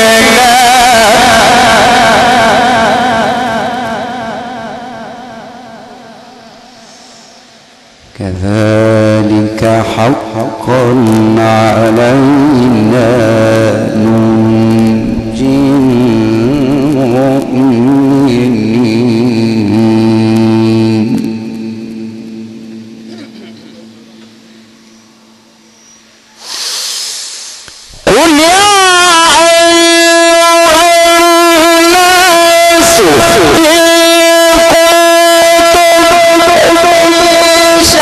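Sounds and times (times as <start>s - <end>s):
man chanting into a microphone: 0.0s - 6.2s, 7.3s - 22.8s, 27.9s - 38.0s
burst of noise: 6.4s - 8.2s, 26.2s - 28.4s.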